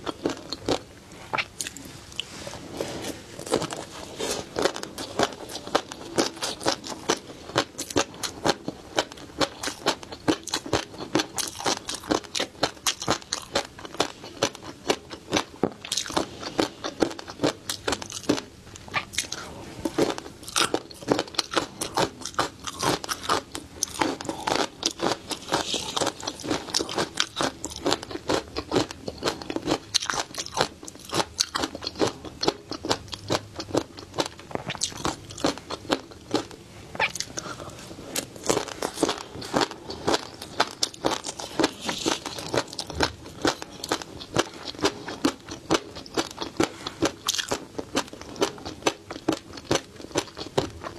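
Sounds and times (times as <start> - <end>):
crunchy chewing: 0.0 - 50.9.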